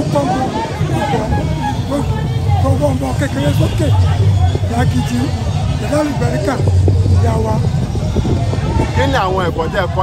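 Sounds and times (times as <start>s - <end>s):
man talking into a microphone: 0.0s - 7.8s
crowd chatter: 0.0s - 10.0s
music: 0.2s - 2.8s.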